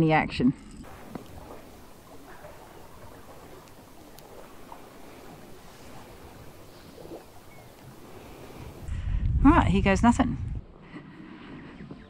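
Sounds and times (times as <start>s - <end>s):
faint wind: 0.0s - 12.0s
faint ticks: 0.6s - 8.1s
sea water noise: 0.6s - 9.0s.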